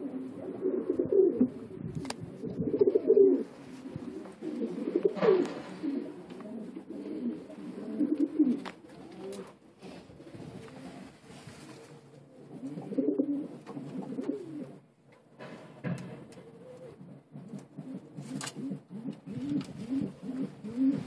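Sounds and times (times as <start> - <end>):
pigeons cooing: 0.0 - 14.9, 16.2 - 21.0.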